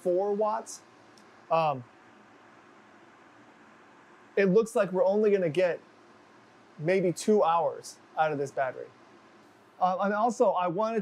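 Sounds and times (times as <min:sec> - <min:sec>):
portable air conditioner hissing: 0:00.0 - 0:11.0.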